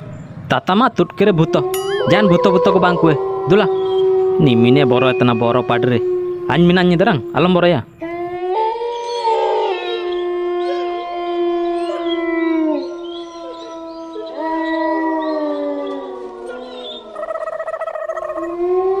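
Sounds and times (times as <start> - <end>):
dogs howling: 1.0 - 19.0.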